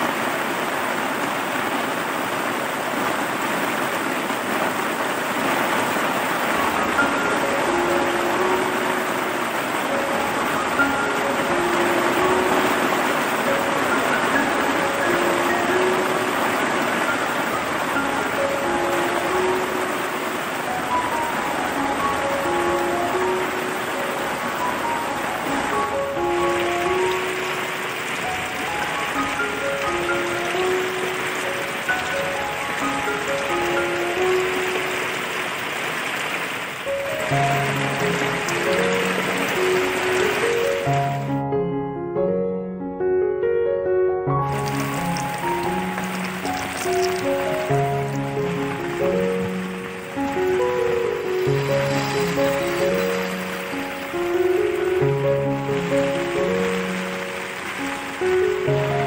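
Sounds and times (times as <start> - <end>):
rain falling on puddles: 0.0 - 41.4, 44.4 - 59.0
slow melody of single notes: 5.3 - 35.8, 36.6 - 59.0.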